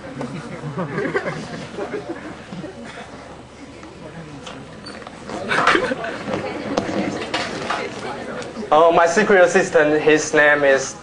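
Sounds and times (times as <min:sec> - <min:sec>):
indistinct voices in a hall: 0:00.0 - 0:11.0.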